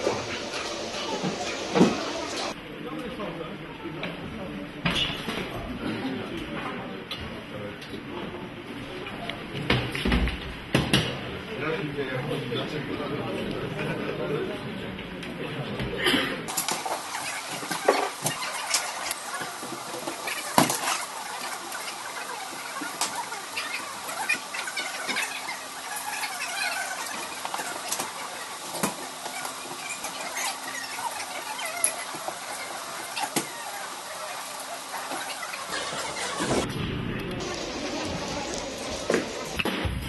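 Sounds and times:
room noise: 0.0s - 40.0s.

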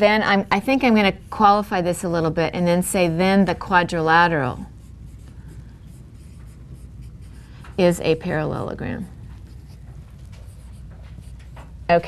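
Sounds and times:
marker writing on whiteboard: 4.6s - 12.0s.

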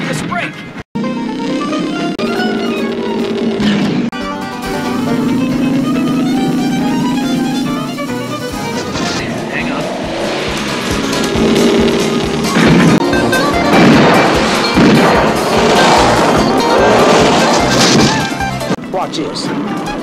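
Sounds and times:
car engine driving hard: 1.0s - 18.8s
action soundtrack music: 1.0s - 20.0s
loud gunfire blasts: 13.7s - 18.4s.

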